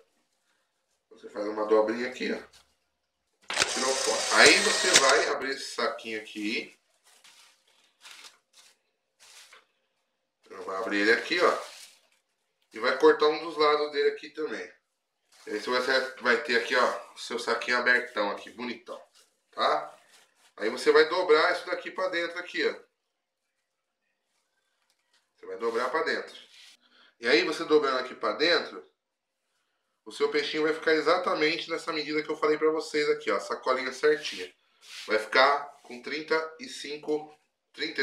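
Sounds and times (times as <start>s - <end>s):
plastic bag rustling: 6.7s - 12.8s, 19.0s - 20.7s.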